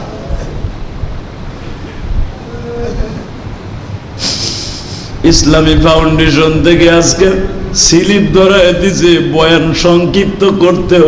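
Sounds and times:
man praying: 0:05.2 - 0:11.0.

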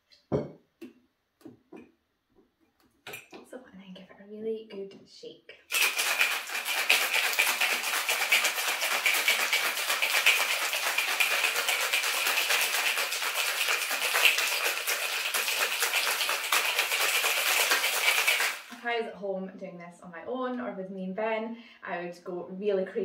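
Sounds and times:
ice rattling in cocktail shaker: 0:05.7 - 0:18.9.

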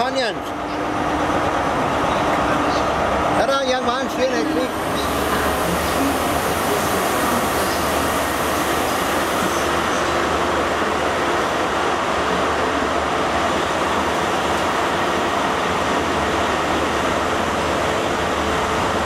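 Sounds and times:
diesel train engine drone: 0:00.0 - 0:19.0
train running noise: 0:00.0 - 0:19.0.

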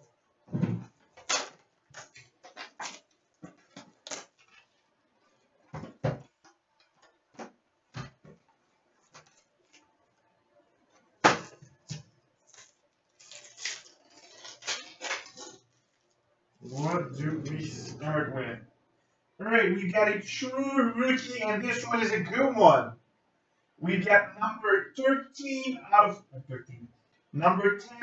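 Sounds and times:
card pack rustling: 0:12.5 - 0:16.0.

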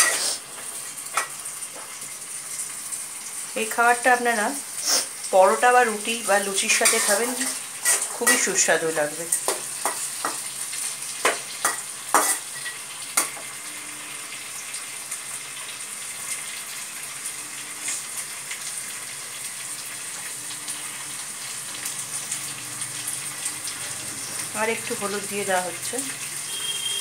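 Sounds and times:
peas and onion sizzling in pan: 0:00.0 - 0:27.0
metal spatula knocking on pan: 0:09.4 - 0:10.4.

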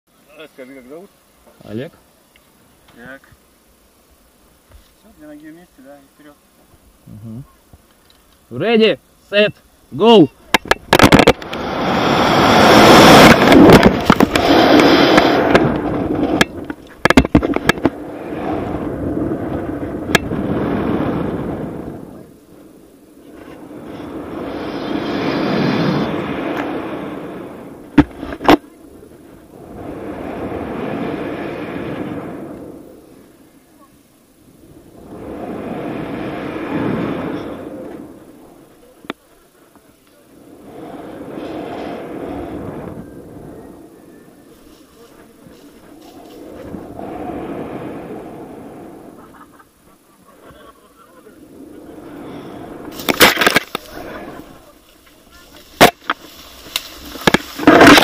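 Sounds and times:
wind rushing over microphone: 0:08.5 - 0:39.2, 0:40.1 - 0:49.8, 0:50.4 - 0:58.0.

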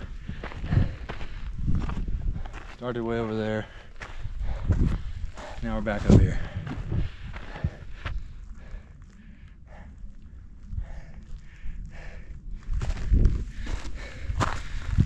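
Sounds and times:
footsteps on rocky trail: 0:00.0 - 0:15.0
low rumble: 0:04.1 - 0:15.0.

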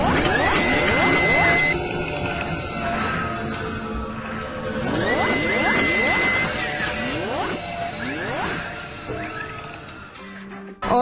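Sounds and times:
dense electronic bed: 0:00.0 - 0:09.8
rising synth sweeps: 0:00.0 - 0:09.8.

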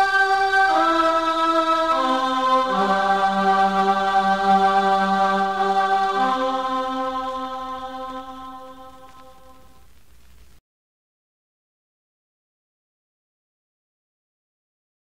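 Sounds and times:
song with long held chords: 0:00.0 - 0:10.0.

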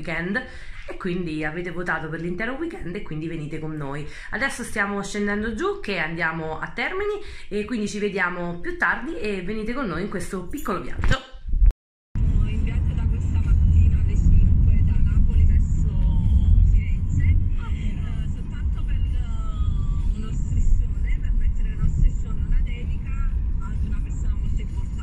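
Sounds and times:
car road rumble: 0:12.2 - 0:25.0.

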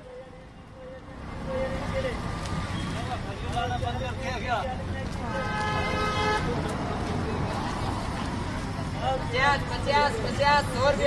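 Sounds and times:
traffic rumble: 0:00.0 - 0:11.0
voices: 0:00.0 - 0:11.0
vehicle horn: 0:05.3 - 0:06.5.

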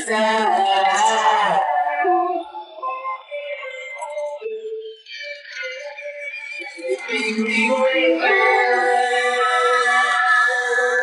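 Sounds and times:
layered singing: 0:00.0 - 0:04.1, 0:06.6 - 0:11.0.

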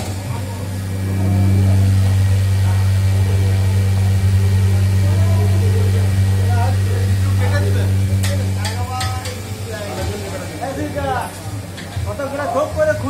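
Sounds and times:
faint voices talking: 0:00.0 - 0:13.0
low machine hum: 0:00.0 - 0:13.0.

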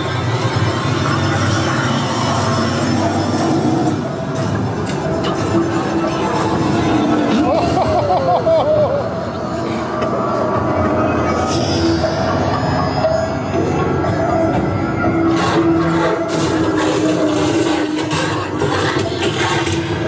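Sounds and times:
eerie music with held tones: 0:00.0 - 0:20.0.

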